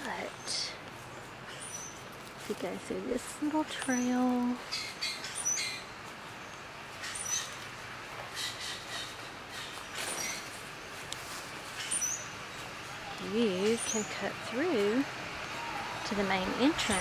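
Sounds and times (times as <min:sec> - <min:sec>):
footsteps on dry leaves: 0:00.0 - 0:17.0
high bird chirps: 0:01.5 - 0:02.0, 0:03.8 - 0:07.6, 0:11.8 - 0:12.6.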